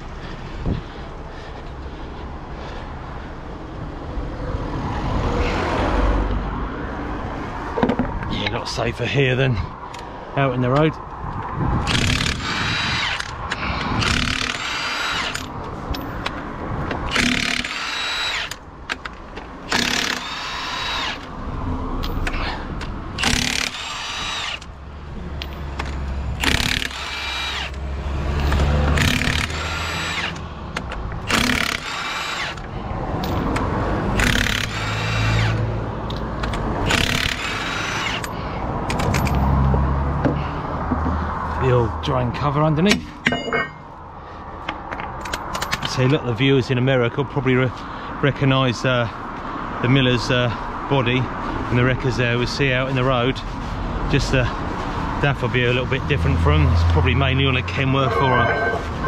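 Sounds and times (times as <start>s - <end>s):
impact wrench hammering: 17.1s - 18.6s, 42.9s - 43.9s.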